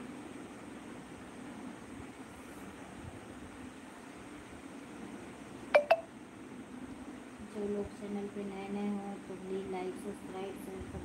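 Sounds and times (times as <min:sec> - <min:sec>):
low room hum: 0:00.0 - 0:11.0
short electronic beeps: 0:05.8 - 0:06.1.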